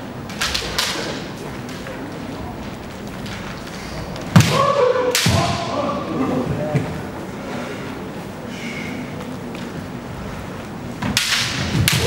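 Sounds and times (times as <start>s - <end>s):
bamboo swords striking: 4.3s - 5.7s, 11.0s - 12.0s.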